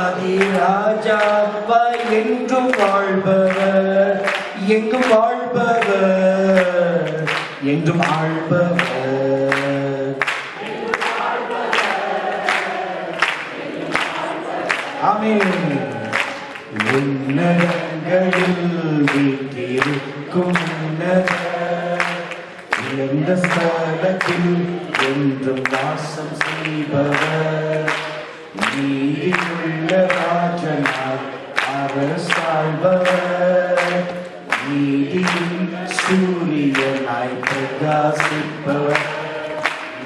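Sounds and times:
man singing into a microphone: 0.0 - 11.8, 14.6 - 40.0
voices singing along: 0.0 - 40.0.

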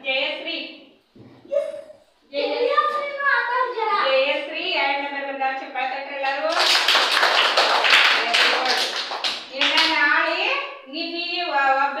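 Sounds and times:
children's voices drawing out words: 1.2 - 4.5
group clapping in applause: 6.3 - 10.4.

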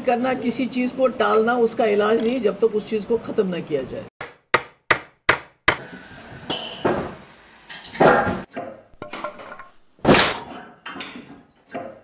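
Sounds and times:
hammer striking a nail: 4.2 - 5.8.

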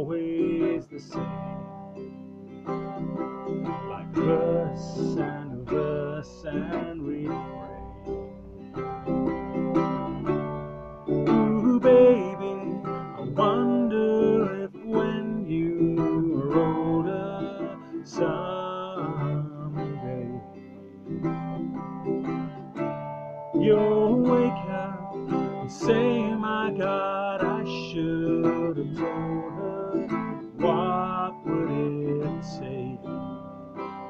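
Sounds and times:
man singing: 0.0 - 1.7, 3.6 - 8.2, 11.1 - 20.8, 23.5 - 33.5
acoustic guitar chords: 0.0 - 34.0.

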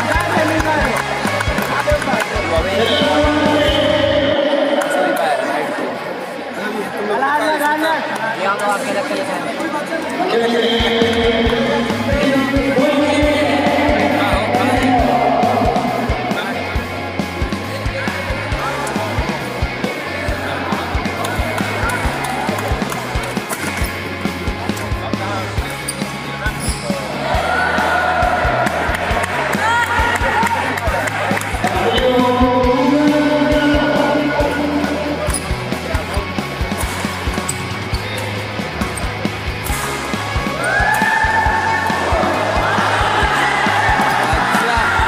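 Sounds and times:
people talking in a hall: 0.0 - 45.0
spectators chattering: 0.0 - 45.0
held high note: 10.4 - 16.7
music with bass beat: 10.6 - 17.4.

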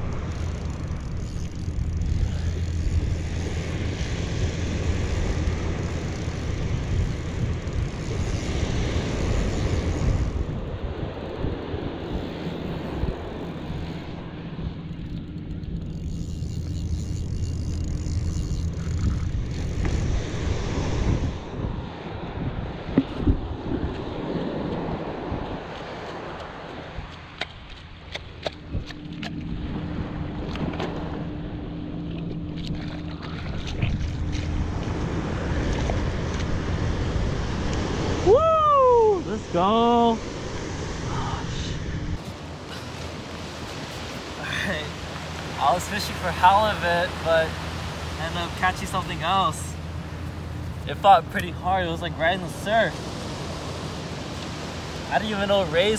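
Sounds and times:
fishing reel cranking: 0.0 - 14.1, 14.8 - 20.1
surf washing in: 0.0 - 14.9, 16.2 - 27.4, 32.8 - 55.9
wind rumbling on microphone: 0.0 - 55.9.

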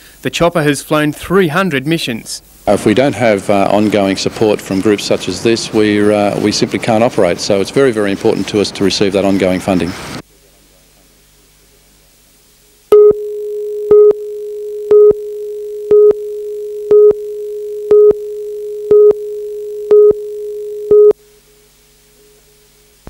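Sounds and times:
countdown beeps: 12.9 - 21.2
steady single tone: 12.9 - 21.4.

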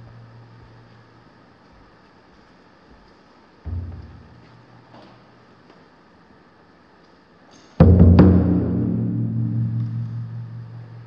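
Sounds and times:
taiko drums ringing boom: 3.7 - 4.4, 7.8 - 11.0.

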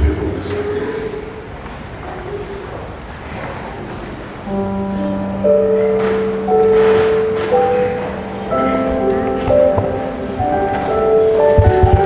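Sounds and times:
church music sustained chords: 4.4 - 12.0.

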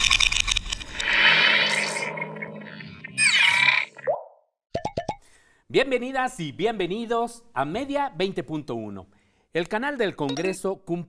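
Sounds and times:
electronic tone: 1.0 - 4.4.

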